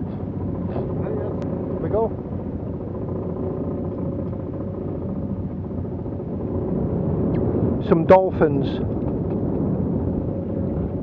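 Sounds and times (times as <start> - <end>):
boat engine low rumble: 0.0 - 11.0
water rushing along hull: 0.0 - 11.0.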